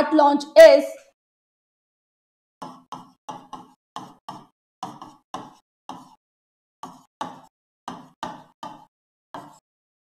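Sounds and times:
stylus tapping on screen: 0:02.6 - 0:06.2, 0:06.8 - 0:09.6.

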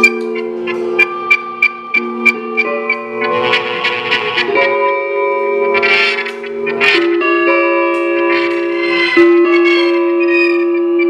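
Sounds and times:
electric guitars with effects: 0:00.0 - 0:11.0
guitar scraping stroke: 0:03.2 - 0:04.8, 0:05.7 - 0:07.3.

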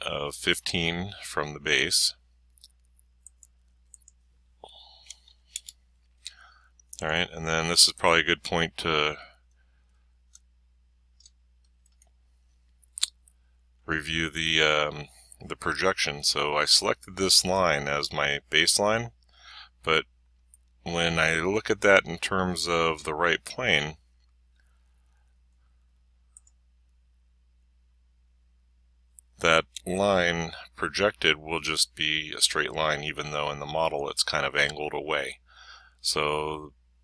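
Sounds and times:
low steady hum: 0:00.0 - 0:37.0
computer mouse clicks: 0:26.3 - 0:26.6.

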